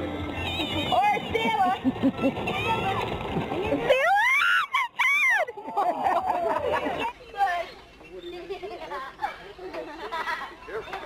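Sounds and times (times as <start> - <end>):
children squealing: 3.9 - 5.6.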